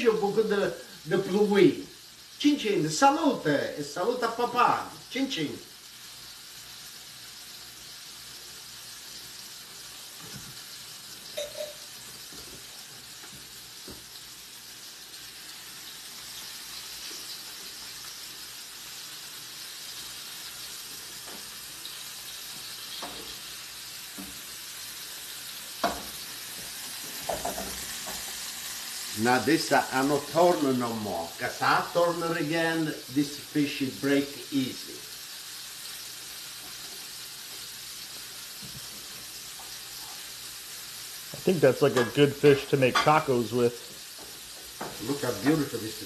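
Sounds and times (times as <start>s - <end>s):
fish sizzling in oil: 0.0s - 46.0s.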